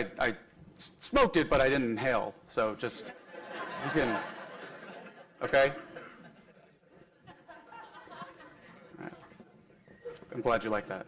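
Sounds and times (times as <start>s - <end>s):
audience laughing faintly: 3.0s - 10.3s.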